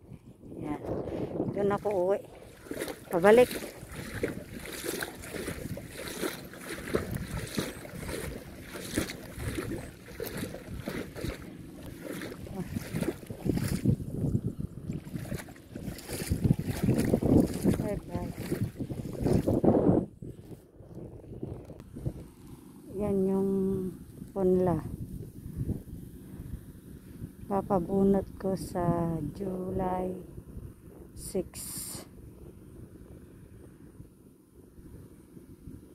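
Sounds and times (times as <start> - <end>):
wind buffeting microphone: 0.0 - 35.9.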